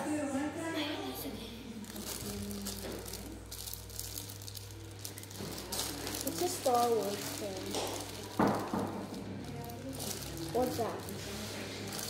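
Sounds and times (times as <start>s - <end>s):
faint voices: 0.0s - 12.0s
rustling and crinkling: 1.8s - 12.0s.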